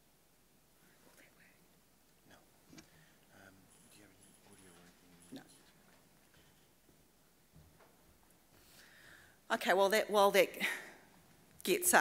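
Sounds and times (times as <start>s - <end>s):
faint whispered voice: 0.8s - 1.7s.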